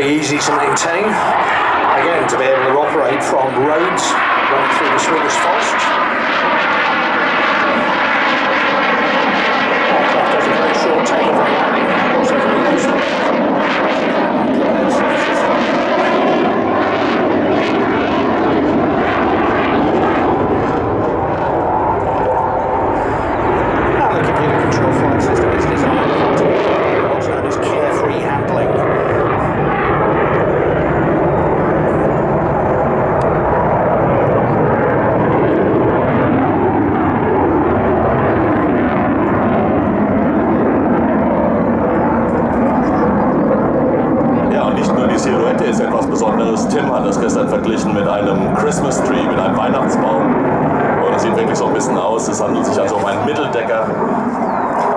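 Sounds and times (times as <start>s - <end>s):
jet engine flying past: 0.0s - 54.9s.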